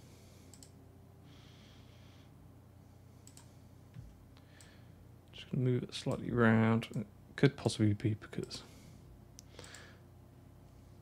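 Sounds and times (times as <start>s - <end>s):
computer mouse clicks: 0.5s - 0.8s, 3.2s - 3.5s.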